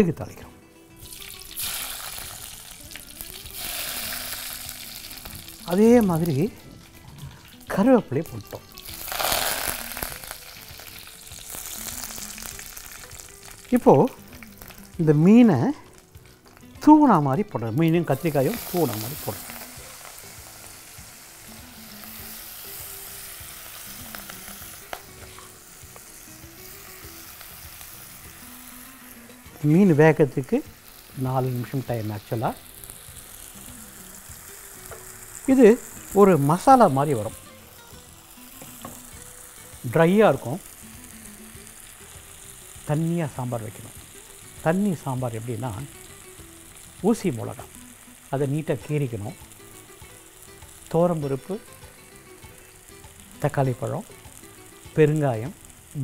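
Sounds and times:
food sizzling in a pot: 0.0 - 56.0.

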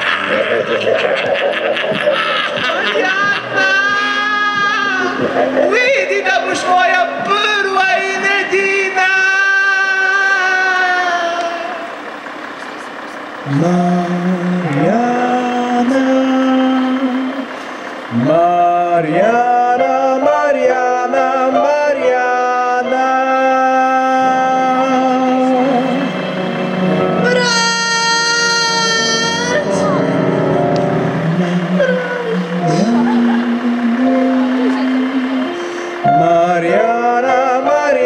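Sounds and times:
person singing with music: 2.0 - 11.9, 13.5 - 38.0.

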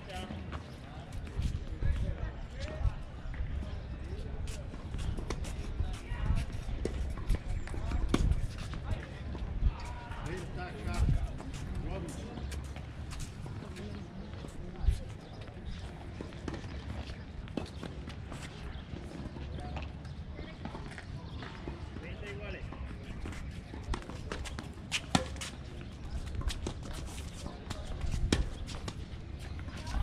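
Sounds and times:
faint background voices: 0.0 - 30.0.

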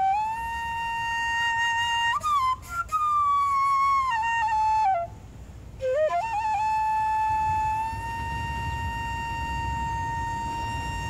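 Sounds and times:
bamboo flute long note: 0.0 - 11.0.

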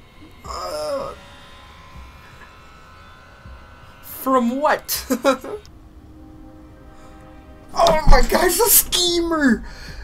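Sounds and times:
faint drone of held tones: 0.0 - 10.0
person speaking: 7.7 - 9.7.

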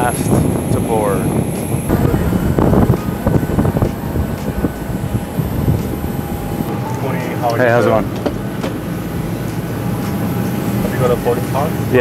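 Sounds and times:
aircraft engine noise: 0.0 - 12.0
thin whine tones: 0.0 - 12.0.

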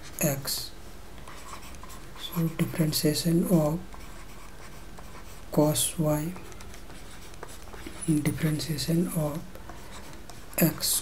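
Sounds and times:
person speaking: 0.0 - 11.0
stylus scratching on tablet: 0.0 - 11.0.

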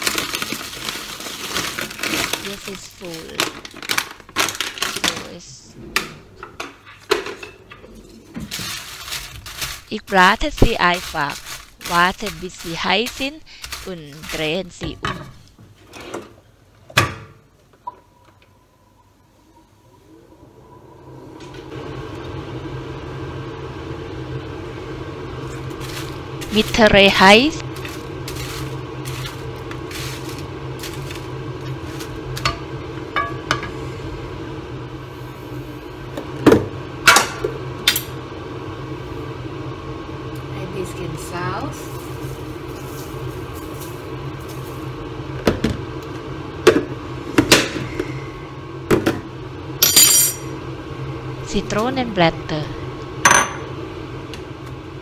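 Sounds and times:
appliance fan humming: 0.0 - 55.0
ringing clink: 49.8 - 50.5.

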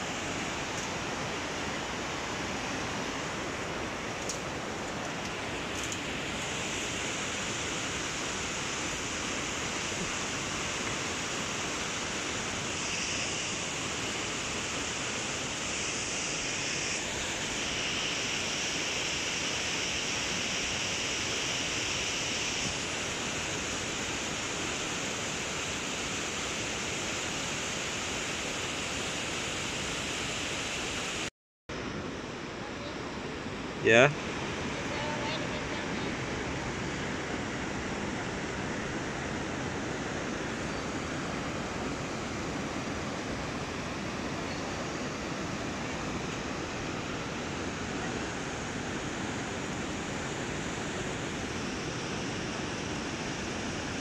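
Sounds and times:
river water rushing over rapids: 0.0 - 54.0.

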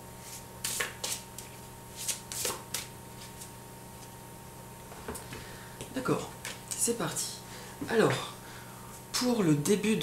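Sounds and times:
cards being shuffled: 0.3 - 3.5.

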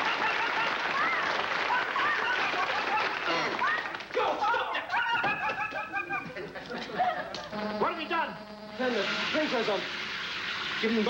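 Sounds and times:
audience laughter: 0.0 - 3.3
audience clapping: 0.0 - 4.7.

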